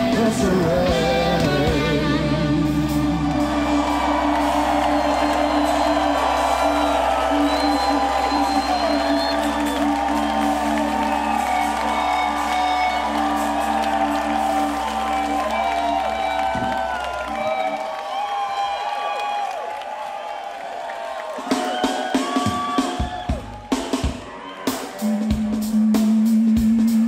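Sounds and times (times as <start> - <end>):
soul band sustained chord: 0.0 - 17.6
crowd cheering and whooping: 2.0 - 25.8.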